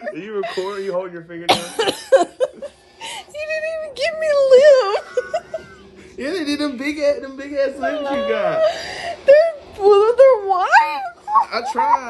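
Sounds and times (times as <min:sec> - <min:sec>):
person laughing: 0:00.0 - 0:00.9
person coughing: 0:01.5 - 0:02.4.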